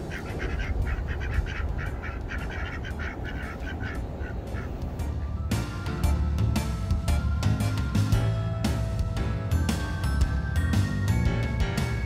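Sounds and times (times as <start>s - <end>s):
ducks quacking rapidly: 0.0s - 5.2s.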